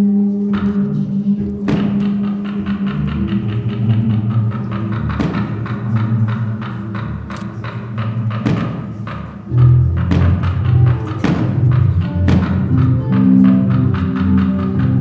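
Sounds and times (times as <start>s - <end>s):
low bass notes: 0.0s - 15.0s
drum and percussion strikes: 0.5s - 15.0s.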